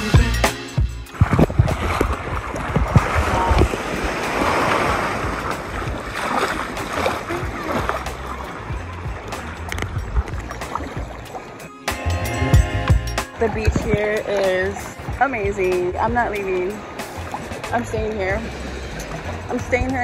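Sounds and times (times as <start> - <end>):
water lapping: 0.0 - 20.0
wave foaming over sand: 1.2 - 9.8.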